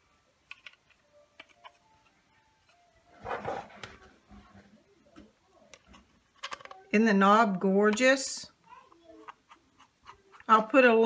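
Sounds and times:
handling noises: 0.4 - 6.9.

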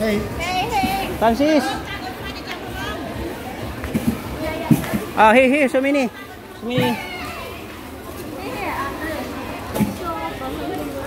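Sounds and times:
background hubbub: 0.0 - 11.0.

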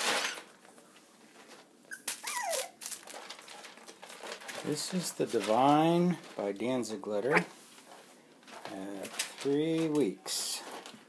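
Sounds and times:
puppy squeaking and whimpering: 1.9 - 2.8
puppies scuffling rustle: 2.2 - 11.0.

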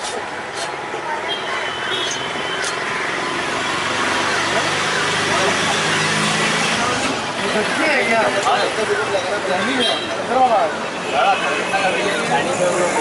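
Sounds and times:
many voices talking: 0.0 - 13.0
traffic noise: 0.0 - 13.0.

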